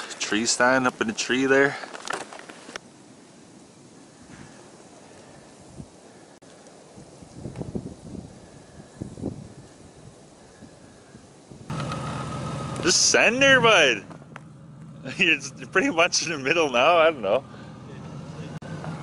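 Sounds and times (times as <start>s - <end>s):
soft rustles: 1.8s - 2.8s
truck engine running: 11.7s - 19.0s.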